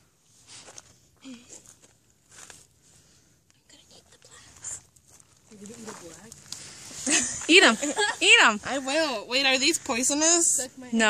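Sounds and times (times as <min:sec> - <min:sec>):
soft scuffs and rustles: 0:00.3 - 0:03.2, 0:04.0 - 0:08.3.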